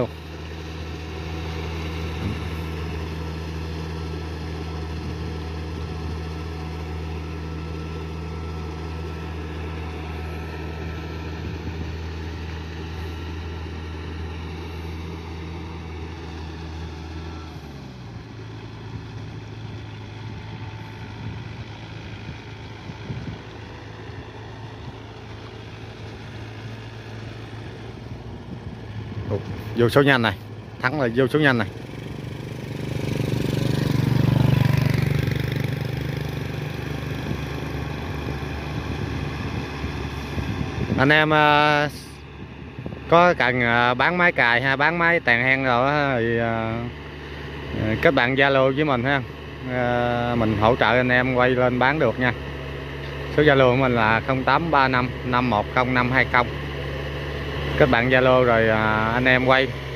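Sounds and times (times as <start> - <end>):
tractor diesel engine running: 0.0 - 59.9.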